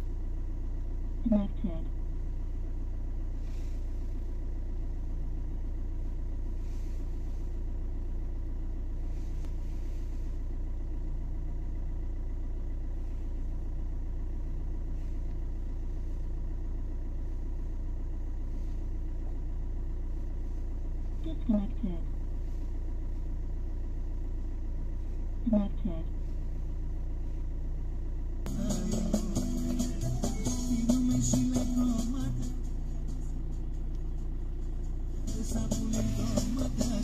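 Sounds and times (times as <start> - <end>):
car engine idling: 0.0 - 37.0
faint soft rustles: 3.3 - 4.4, 6.0 - 7.8, 8.9 - 10.7, 12.8 - 13.6, 14.6 - 16.5, 17.1 - 21.2, 22.2 - 23.5, 26.1 - 27.7.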